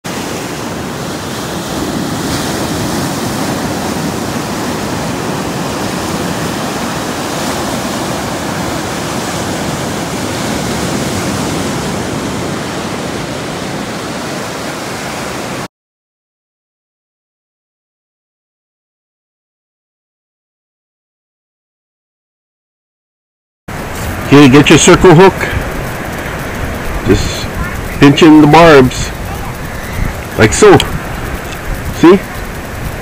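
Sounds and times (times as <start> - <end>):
waves breaking on a beach: 0.1 - 15.7, 23.7 - 33.0.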